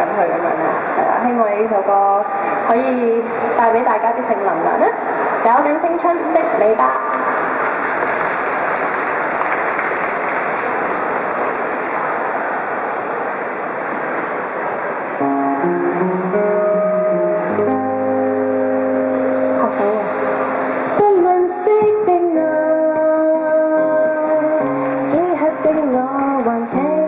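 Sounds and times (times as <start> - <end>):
steady noisy hiss: 0.0 - 27.0
acoustic guitar chords: 15.2 - 21.8.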